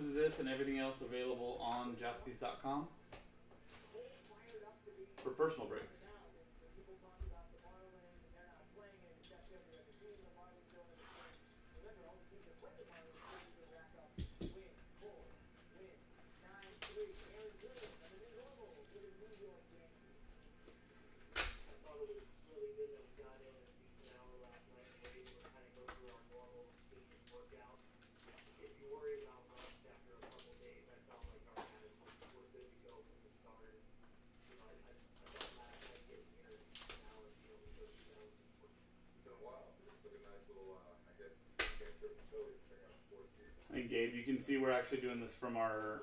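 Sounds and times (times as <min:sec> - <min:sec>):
plastic wrapper crinkling and tearing: 0:16.4 - 0:19.5, 0:24.0 - 0:30.8, 0:34.4 - 0:38.3.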